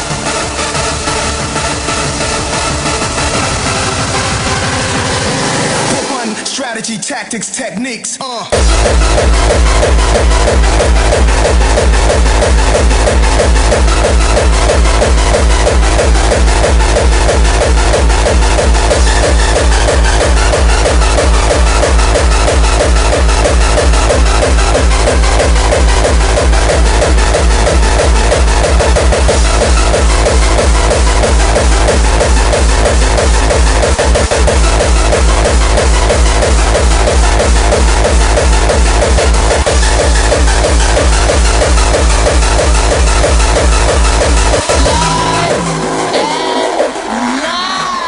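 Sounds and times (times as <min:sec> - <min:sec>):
hardcore techno music: 0:00.0 - 0:48.0
fast kick drum: 0:08.5 - 0:46.0.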